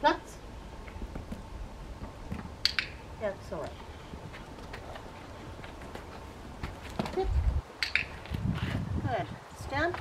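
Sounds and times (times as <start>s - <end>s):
dog-training clicker clicking: 7.8s - 8.1s.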